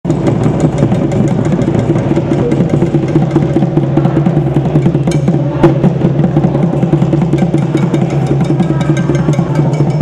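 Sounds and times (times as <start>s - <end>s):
fast busy drumming: 0.0s - 10.0s.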